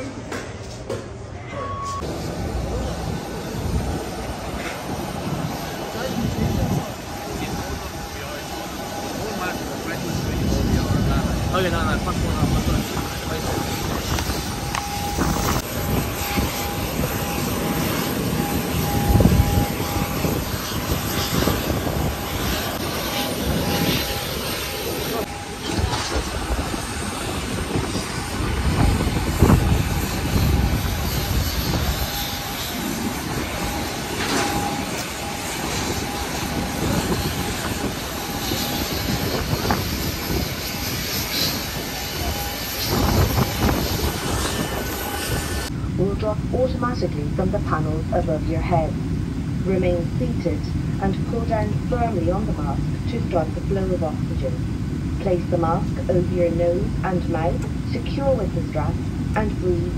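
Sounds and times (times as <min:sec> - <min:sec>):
jet engine rush: 0:00.0 - 0:59.9
thin steady whine: 0:01.4 - 0:59.9
low rumbles: 0:02.0 - 0:59.9.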